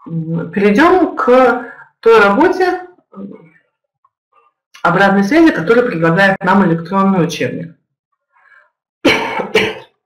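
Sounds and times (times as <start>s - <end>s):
woman coughing: 9.1s - 10.0s.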